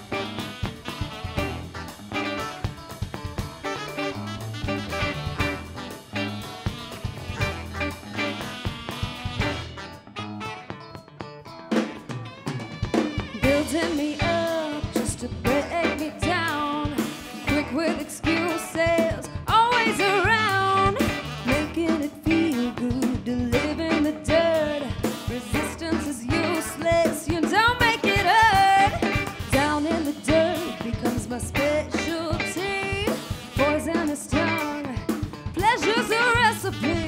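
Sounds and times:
saxophone: 0:00.0 - 0:11.2, 0:11.8 - 0:37.0
electric bass: 0:00.0 - 0:12.2, 0:12.9 - 0:37.0
drum kit: 0:00.0 - 0:37.0
electric guitar: 0:00.0 - 0:37.0
woman singing lead: 0:13.2 - 0:37.0.

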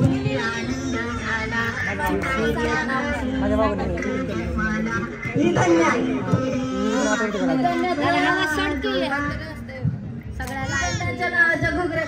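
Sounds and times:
woman singing into microphone: 0:00.0 - 0:04.6, 0:06.0 - 0:12.0.

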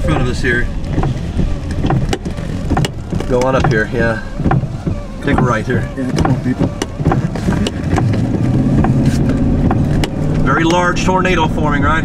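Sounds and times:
car engine hum: 0:00.0 - 0:12.0
tyre noise on wet road: 0:00.0 - 0:12.0.

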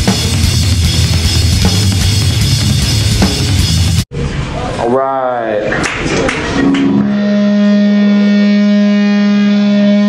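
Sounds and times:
electric guitar ringing note: 0:06.6 - 0:10.0.

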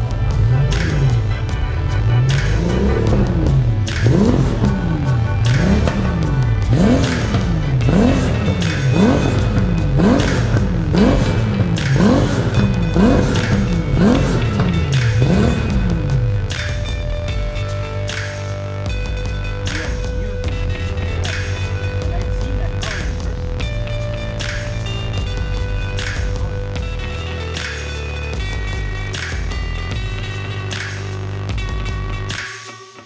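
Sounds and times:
car engine revving: 0:00.0 - 0:31.9
background music: 0:00.0 - 0:33.0.

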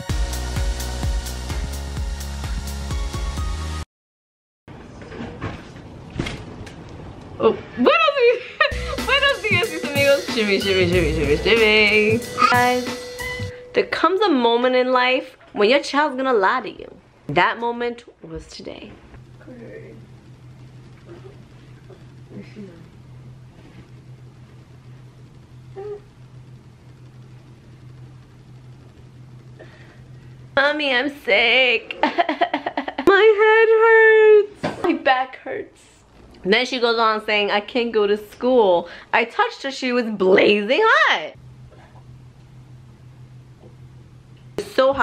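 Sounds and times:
low hum with faint hiss: 0:13.5 - 0:45.0.

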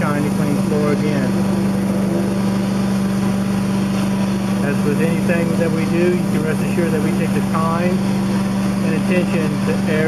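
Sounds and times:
floor cleaning machine humming: 0:00.0 - 0:10.0.

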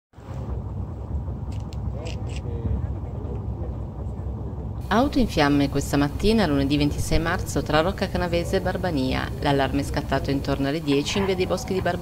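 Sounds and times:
low steady rumble: 0:00.2 - 0:12.0.

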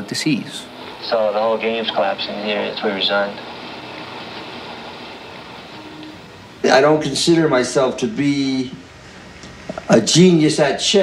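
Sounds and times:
background hiss: 0:00.0 - 0:11.0
faint low hum: 0:00.0 - 0:11.0.

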